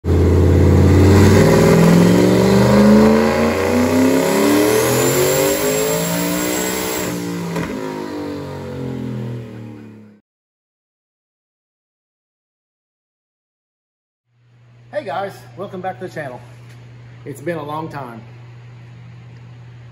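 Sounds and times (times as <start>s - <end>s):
car engine revving through gears: 0.0s - 10.2s.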